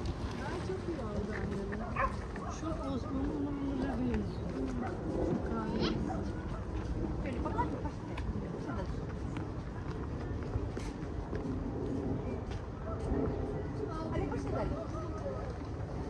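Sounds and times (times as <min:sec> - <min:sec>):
footsteps on paved path: 0:00.0 - 0:16.0.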